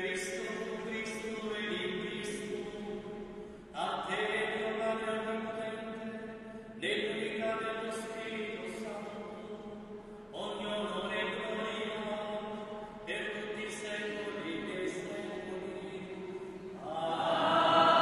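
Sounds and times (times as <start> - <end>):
man chanting with echo: 0.0 - 18.0.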